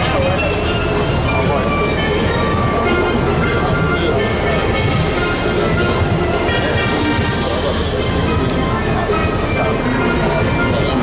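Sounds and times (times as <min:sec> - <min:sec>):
traffic rumble: 0:00.0 - 0:11.0
voices of passers-by: 0:00.0 - 0:11.0.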